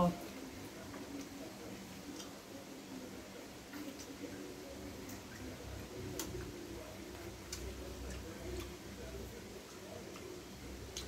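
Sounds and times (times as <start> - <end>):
eating clicks and smacks: 0.3 - 2.4, 3.7 - 11.0.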